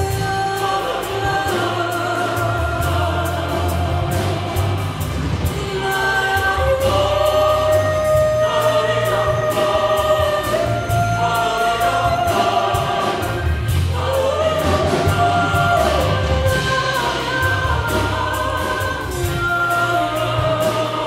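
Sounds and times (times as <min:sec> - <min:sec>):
choir singing sustained notes: 0:00.0 - 0:21.0
deep steady bass: 0:00.0 - 0:21.0
orchestra playing: 0:00.0 - 0:21.0.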